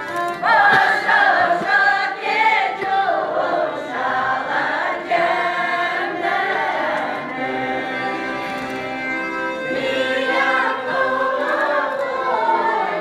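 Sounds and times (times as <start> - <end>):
choir singing folk song: 0.0 - 13.0.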